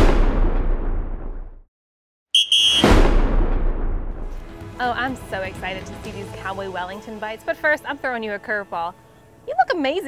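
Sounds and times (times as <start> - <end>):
deep boom: 0.0 - 1.6, 2.7 - 4.4.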